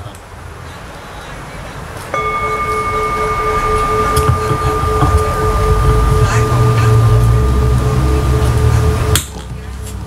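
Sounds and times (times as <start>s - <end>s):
bowl bell ringing: 2.2s - 9.6s.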